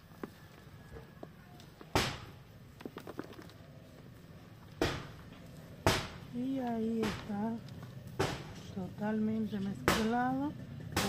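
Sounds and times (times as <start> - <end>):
hands mixing potting soil: 2.5 - 10.2.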